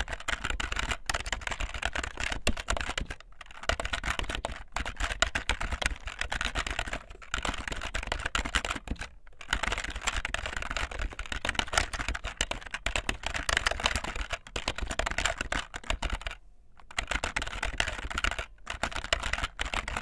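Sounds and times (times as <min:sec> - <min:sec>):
fast typing on keyboard: 0:00.0 - 0:20.0.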